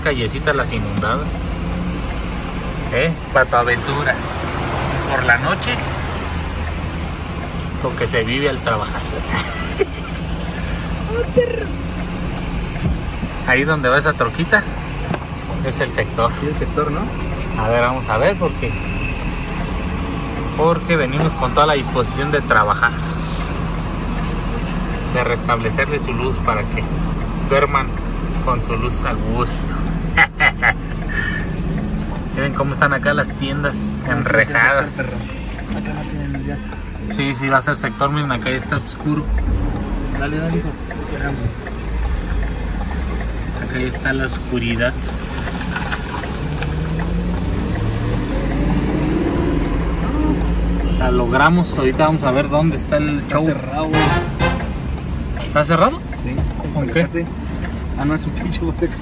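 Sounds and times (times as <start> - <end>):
road noise: 0.0 - 59.0
tyre noise on wet street: 0.0 - 59.0
vehicle engine hum: 0.0 - 59.0.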